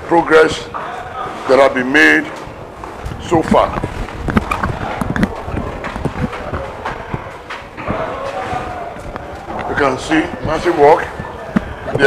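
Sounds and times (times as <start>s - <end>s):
faint voices: 0.0s - 12.0s
footsteps on concrete stairs: 2.4s - 12.0s.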